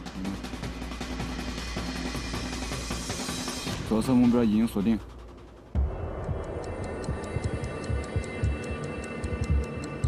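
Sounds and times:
tense background music: 0.0s - 10.0s
steady ticking: 4.5s - 10.0s
deep irregular pulses: 5.3s - 10.0s.

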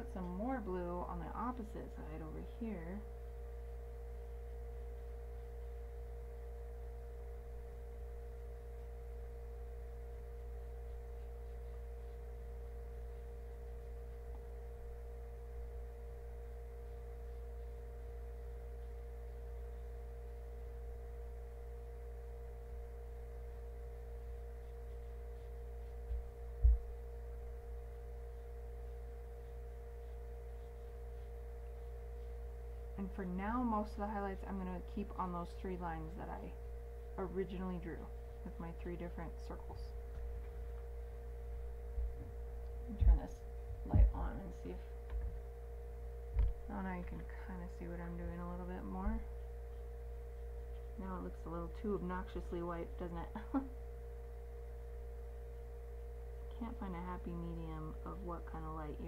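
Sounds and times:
electrical hum: 0.0s - 59.0s
low thumps: 26.0s - 27.0s, 41.6s - 45.6s.

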